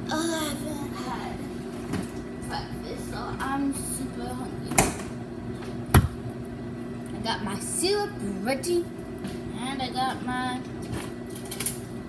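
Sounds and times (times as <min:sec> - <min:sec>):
microwave oven humming: 0:00.0 - 0:12.0
sharp knocks: 0:05.9 - 0:06.2.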